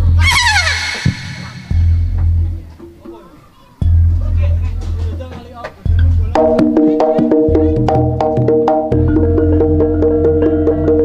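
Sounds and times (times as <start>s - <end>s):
gamelan music: 0.0s - 2.8s, 6.0s - 11.0s
deep beats: 0.0s - 3.1s, 3.8s - 11.0s
high wavering melodic line: 0.2s - 2.4s.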